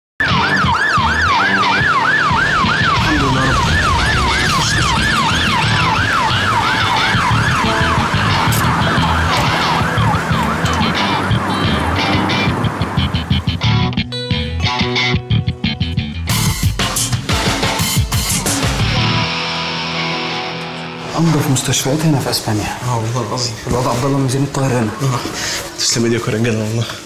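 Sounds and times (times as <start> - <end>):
ambulance siren wailing: 0.2 - 13.8.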